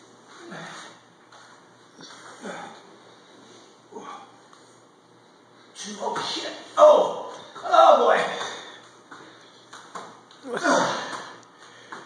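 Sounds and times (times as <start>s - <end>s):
man exclaiming: 5.8s - 8.6s.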